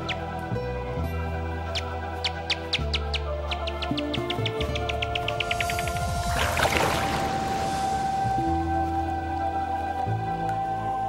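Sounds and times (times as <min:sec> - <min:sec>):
background music: 0:00.0 - 0:11.0
bat echolocation chirps: 0:01.6 - 0:07.8
water splash: 0:05.2 - 0:09.5.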